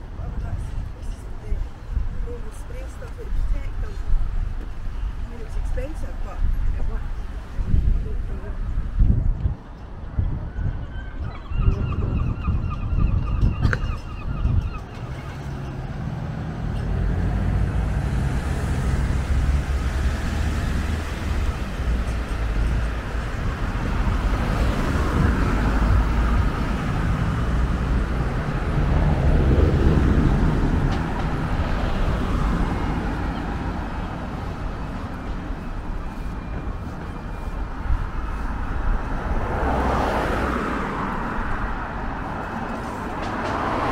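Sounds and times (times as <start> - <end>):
cars passing on street: 0.0 - 43.9.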